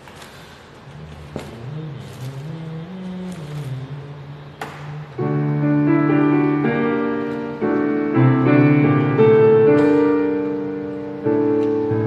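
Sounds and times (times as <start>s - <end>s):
soft low sliding melody: 1.0s - 12.0s
loud piano chord on keyboard: 5.2s - 12.0s.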